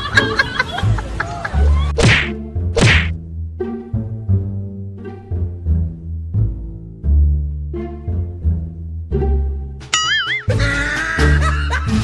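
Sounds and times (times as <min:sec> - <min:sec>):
plucked string music: 0:03.3 - 0:11.6.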